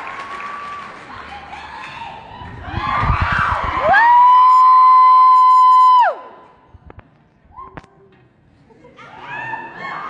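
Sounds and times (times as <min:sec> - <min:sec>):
crowd cheering: 0:00.0 - 0:06.4.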